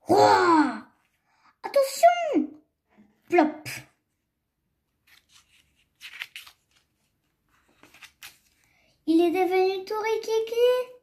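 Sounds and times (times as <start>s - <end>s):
magazine page turning: 4.9s - 8.8s.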